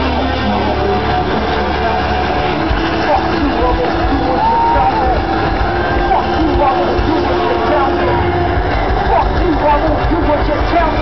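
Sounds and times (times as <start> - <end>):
heavy rock band playing live: 0.0 - 11.0
voice over the band: 3.0 - 5.3.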